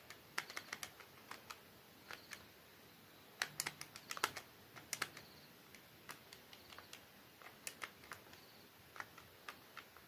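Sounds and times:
calculator keys clicking: 0.0s - 2.4s, 3.4s - 10.0s.

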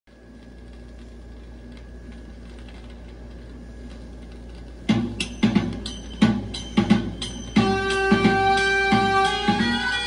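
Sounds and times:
vinyl record crackle: 0.1s - 10.0s.

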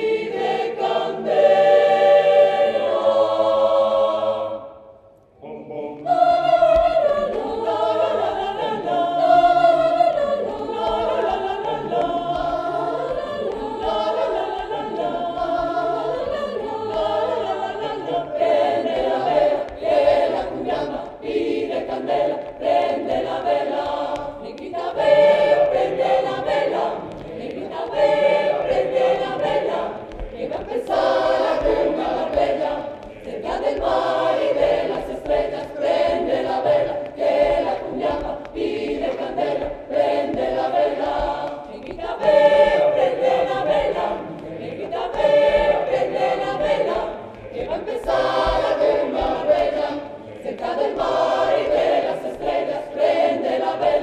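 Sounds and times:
mixed choir singing a cappella: 0.0s - 54.0s.

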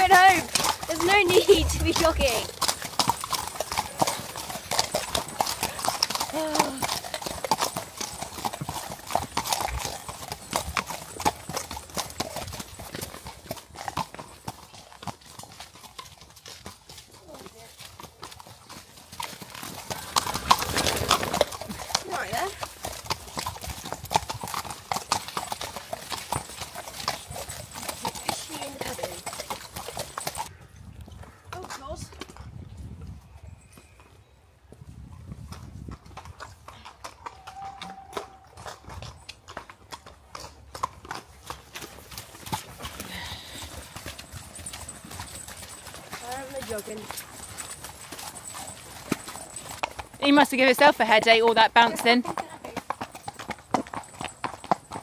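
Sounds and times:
horse hooves clip-clopping on dirt: 0.0s - 55.0s.

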